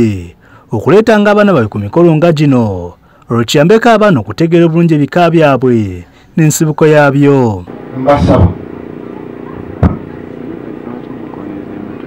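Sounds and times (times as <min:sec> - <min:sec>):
engine droning: 0:07.7 - 0:12.0
faint background voices: 0:07.8 - 0:12.0.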